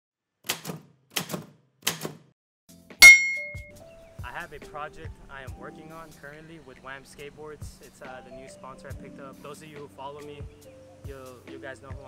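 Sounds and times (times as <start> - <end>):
typewriter bell ding: 3.0 - 3.7.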